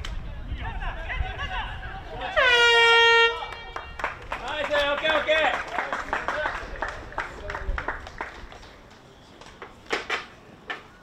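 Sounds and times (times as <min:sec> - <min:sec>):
loud steady horn: 0:02.3 - 0:03.8.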